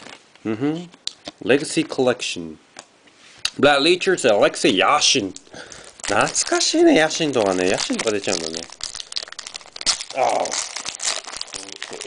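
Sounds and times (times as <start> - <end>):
trading cards rustling and clicking: 5.7 - 9.3.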